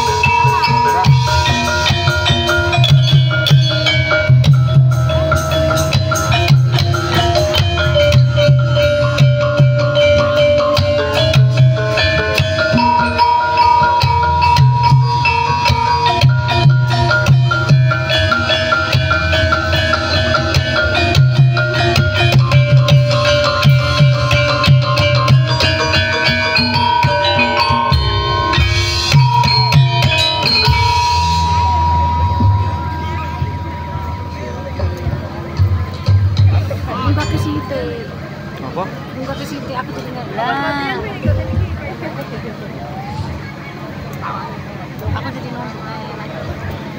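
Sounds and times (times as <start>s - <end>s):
metallophones playing melody: 0.0s - 39.2s
steady drum beats: 0.0s - 40.1s, 41.0s - 42.3s
long held high note: 25.8s - 36.0s.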